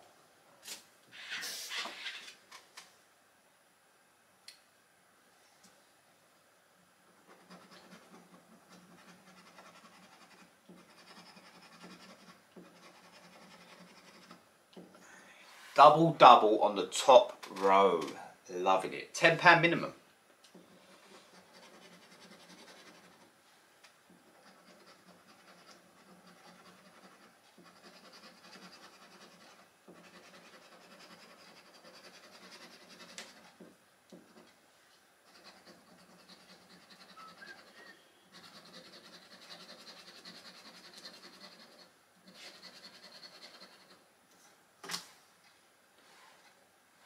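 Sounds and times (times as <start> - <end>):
scratching a scratchcard: 7.2 - 14.4, 20.5 - 23.3, 24.2 - 34.5, 35.2 - 44.0.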